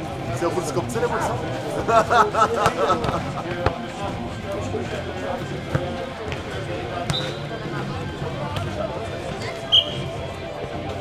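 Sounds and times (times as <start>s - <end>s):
voices of players and onlookers: 0.0s - 11.0s.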